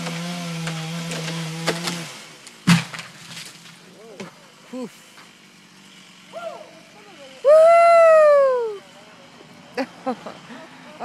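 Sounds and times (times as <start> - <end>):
chainsaw running: 0.0 - 2.8, 5.0 - 7.5
tree trunk hitting the ground: 2.6 - 3.8.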